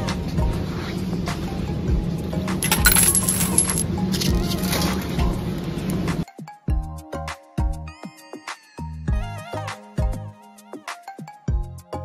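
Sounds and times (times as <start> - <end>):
coins jingling: 2.6 - 3.8
background music: 6.2 - 12.0.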